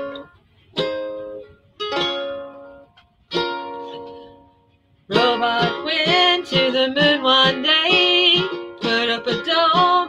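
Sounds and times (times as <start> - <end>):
lute chords strummed: 0.0 - 10.0
woman singing: 5.1 - 10.0.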